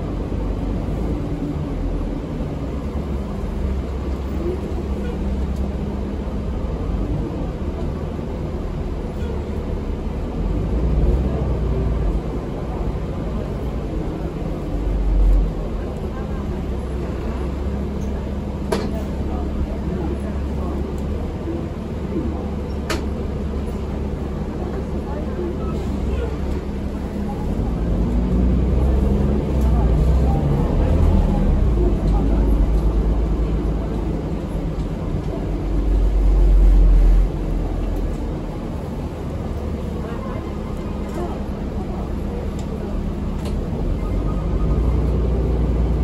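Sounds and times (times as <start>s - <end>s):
bus engine and road rumble: 0.0s - 46.0s.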